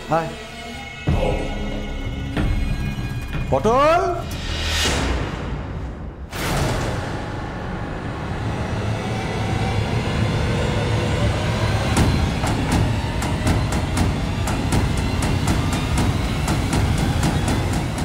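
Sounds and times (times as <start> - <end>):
steady ticking beat: 11.9 - 18.0.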